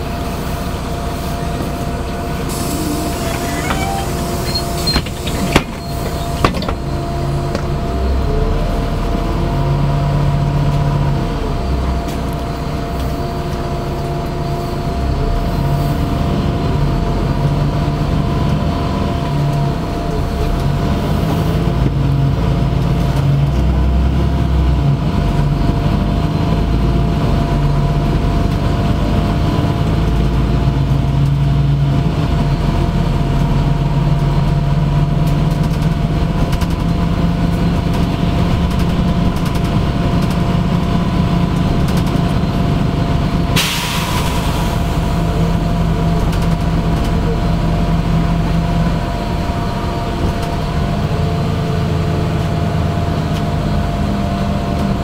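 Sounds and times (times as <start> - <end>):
steady whine: 0.0 - 8.4
bus engine drone: 0.0 - 55.0
air brakes hissing: 1.1 - 6.9, 43.6 - 45.5.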